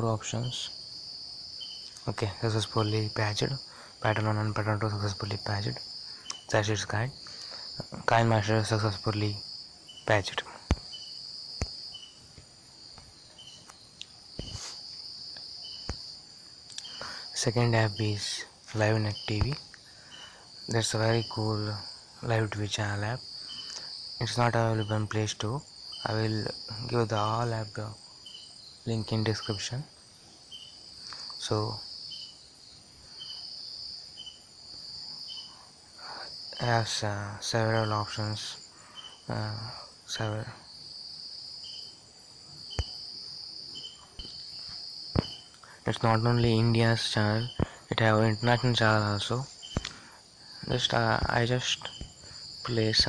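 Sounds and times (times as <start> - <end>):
crickets chirping: 0.0 - 53.0
insects trilling: 0.0 - 53.0
sharp clicks: 49.7 - 50.0.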